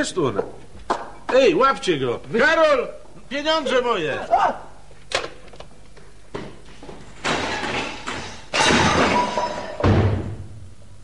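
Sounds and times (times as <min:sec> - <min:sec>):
crashing clatters: 0:07.0 - 0:10.2
heavy thud: 0:09.8 - 0:10.6.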